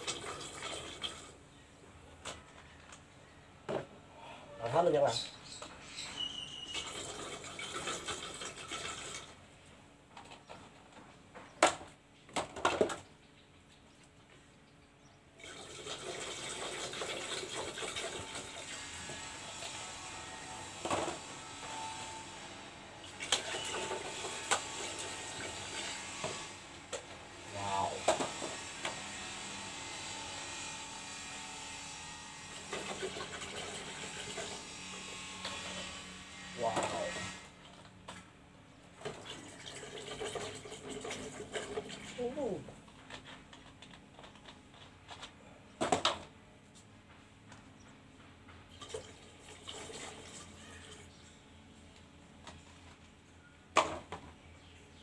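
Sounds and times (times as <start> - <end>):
liquid pouring into liquid: 39.0 - 42.0.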